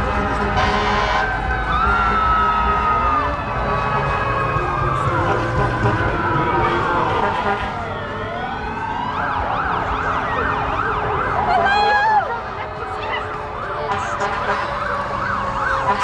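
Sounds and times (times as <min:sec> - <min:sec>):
emergency siren wailing and yelping: 0:00.3 - 0:16.0.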